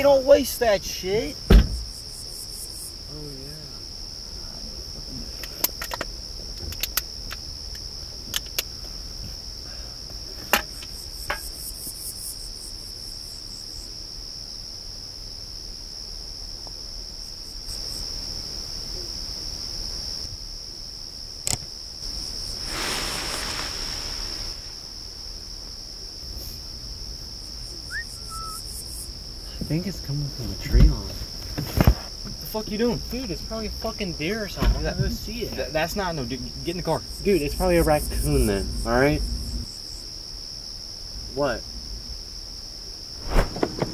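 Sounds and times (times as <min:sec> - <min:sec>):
crickets trilling: 0:00.0 - 0:43.9
sharp clicks: 0:21.4 - 0:21.7.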